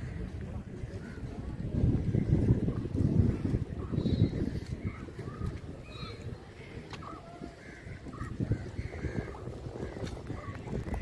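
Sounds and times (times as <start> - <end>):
crows cawing: 6.0 - 10.6.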